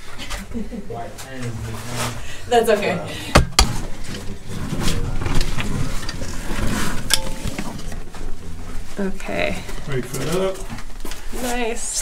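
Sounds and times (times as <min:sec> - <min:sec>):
sharp knocks: 0:03.3 - 0:03.8.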